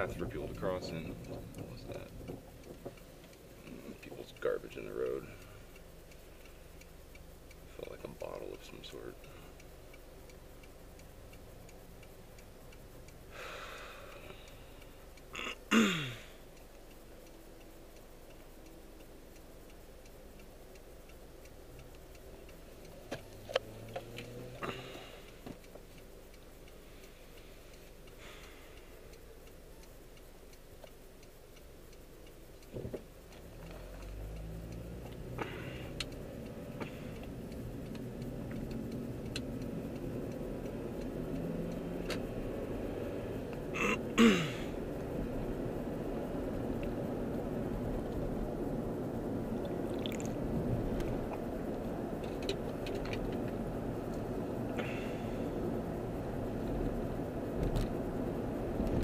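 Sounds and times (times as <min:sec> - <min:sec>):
sharp clicks: 0:00.0 - 0:15.7, 0:16.4 - 0:59.0
car engine idling: 0:00.0 - 0:59.0.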